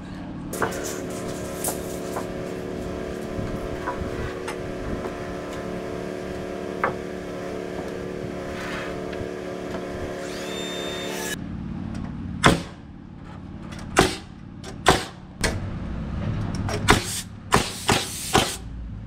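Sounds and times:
air compressor motor hum: 0.5 - 11.4, 16.9 - 18.6
lumber knocking: 6.8 - 7.1.

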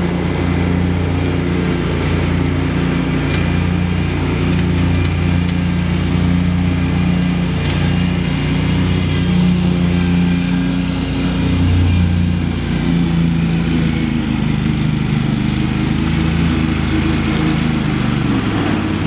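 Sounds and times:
lawn mower engines running: 0.0 - 19.0.

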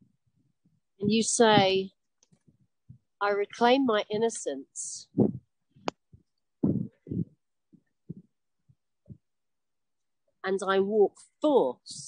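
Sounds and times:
faint soft low thumps: 6.1 - 7.4.

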